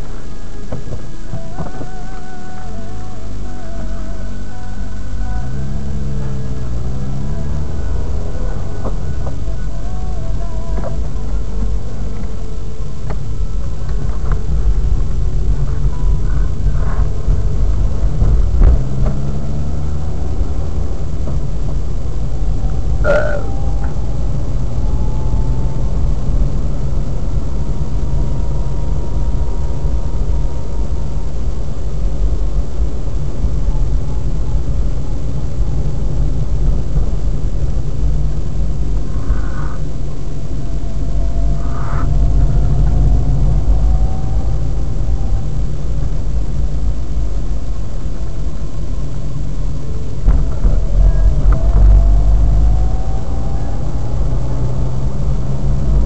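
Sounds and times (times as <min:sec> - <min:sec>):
car engine and tyres on wet road: 0:00.0 - 0:56.0.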